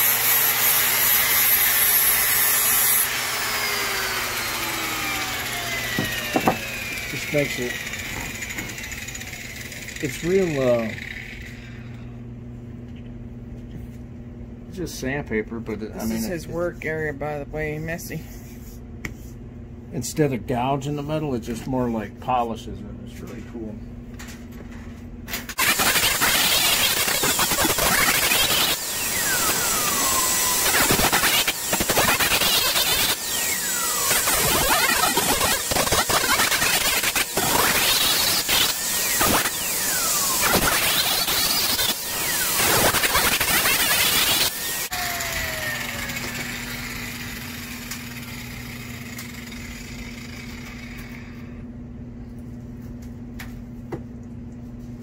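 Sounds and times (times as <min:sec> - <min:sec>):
angle grinder sanding wood: 0:00.0 - 0:11.2, 0:25.6 - 0:50.7.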